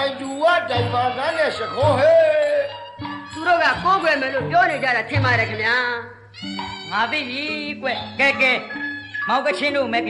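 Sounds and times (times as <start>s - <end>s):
high wavering cry: 0.2s - 4.8s, 6.4s - 9.8s.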